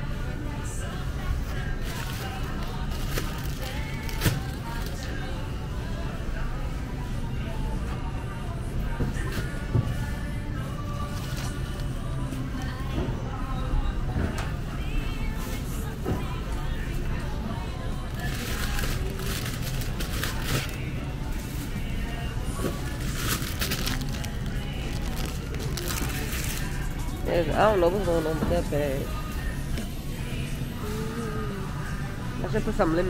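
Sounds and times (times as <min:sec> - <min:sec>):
background music: 0:00.0 - 0:33.0
plastic bags crinkling: 0:01.8 - 0:05.1, 0:18.1 - 0:20.9, 0:22.7 - 0:27.1.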